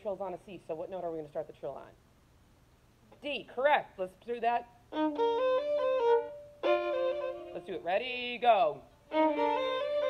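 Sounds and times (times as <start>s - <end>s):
violin trill on double stop: 5.0s - 7.6s, 9.1s - 10.0s.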